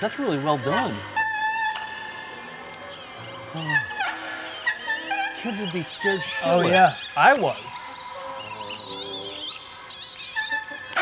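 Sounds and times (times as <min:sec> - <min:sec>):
eerie music of held tones: 0:00.0 - 0:11.0.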